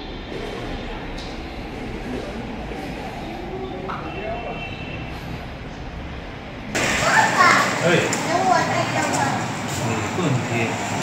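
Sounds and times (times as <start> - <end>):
child speaking loudly: 7.0 - 9.5.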